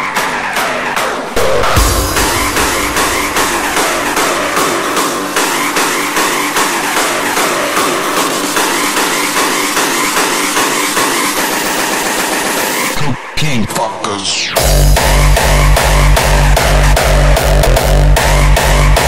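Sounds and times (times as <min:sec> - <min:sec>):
hardstyle electronic dance track: 0:00.0 - 0:19.0.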